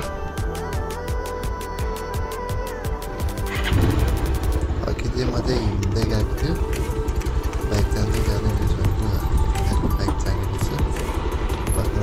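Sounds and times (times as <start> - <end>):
motorcycle engine running: 3.3 - 12.0.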